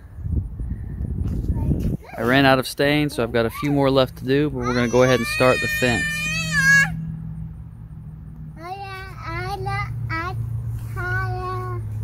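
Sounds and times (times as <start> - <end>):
toddler high-pitched call: 4.6 - 7.0.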